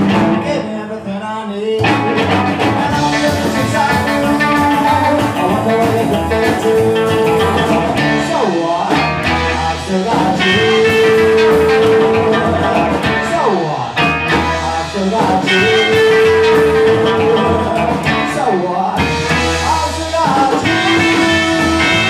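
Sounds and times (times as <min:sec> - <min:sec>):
sliding guitar notes: 0:00.0 - 0:00.9, 0:01.8 - 0:22.0
rock and roll band playing: 0:00.0 - 0:22.0.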